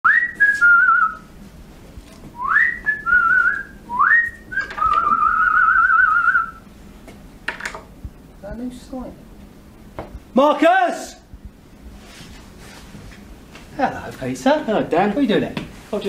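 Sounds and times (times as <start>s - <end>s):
person whistling a tune: 0.1s - 1.3s, 2.4s - 6.6s.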